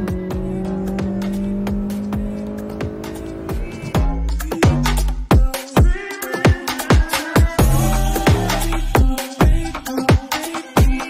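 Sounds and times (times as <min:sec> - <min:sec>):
car engine revving under acceleration: 0:00.0 - 0:04.3
music with steady beat: 0:00.0 - 0:11.0.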